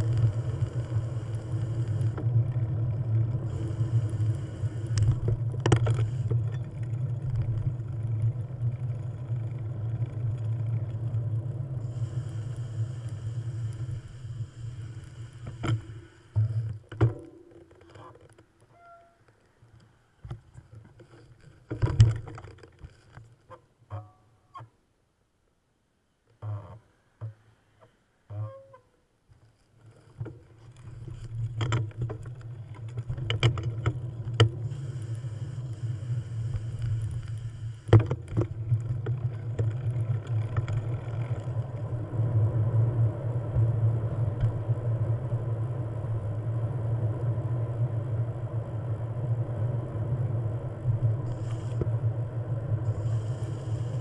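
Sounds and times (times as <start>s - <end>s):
vehicle engine drone: 0.0s - 16.6s, 33.2s - 54.0s.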